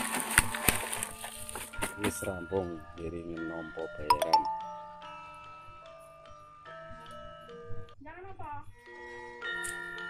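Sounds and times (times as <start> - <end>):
plastic sacks rustling: 0.0 - 2.2
chime-like background music: 1.8 - 7.9, 8.8 - 10.0.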